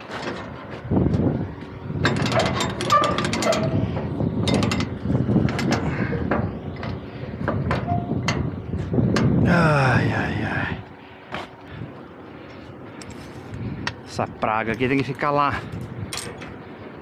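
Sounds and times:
metal cables and chain clinking: 2.0 - 7.0, 15.5 - 16.6.

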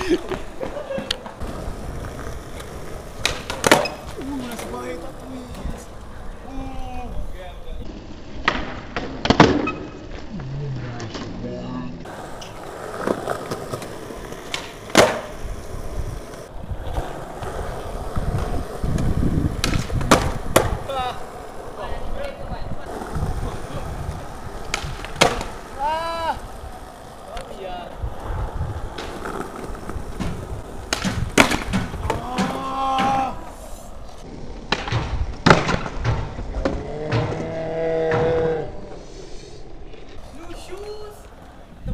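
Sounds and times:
skateboard slapping down: 0.0 - 6.1, 8.4 - 11.4, 12.0 - 38.6
skateboard wheels rolling: 0.0 - 41.9
brief shouts: 25.8 - 26.5, 32.0 - 33.6.

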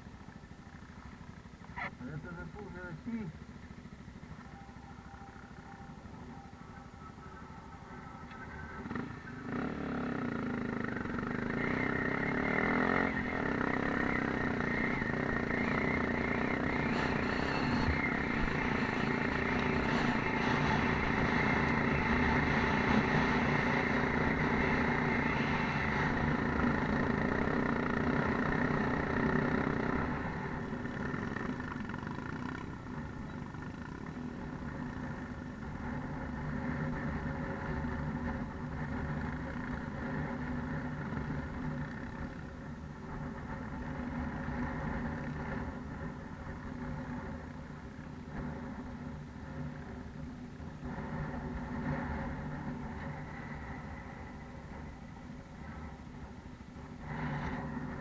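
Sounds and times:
motorcycle engine running: 0.0 - 58.0.

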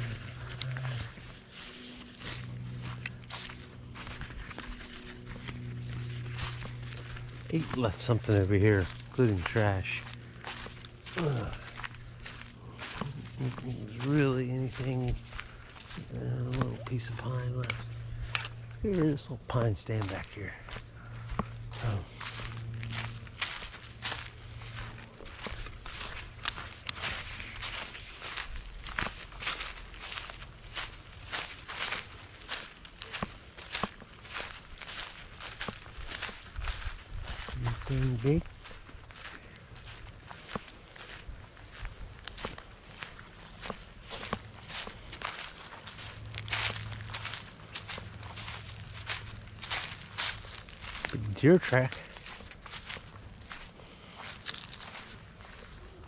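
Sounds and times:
footsteps crunching on dry leaves: 0.0 - 56.0.

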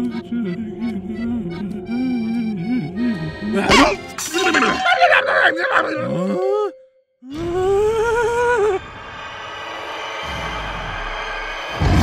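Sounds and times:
cartoon character frightened cry: 3.6 - 6.7.

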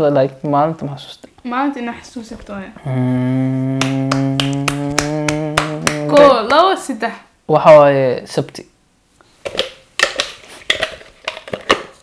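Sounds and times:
man humming low note: 2.8 - 6.3
man speaking: 2.8 - 6.3.

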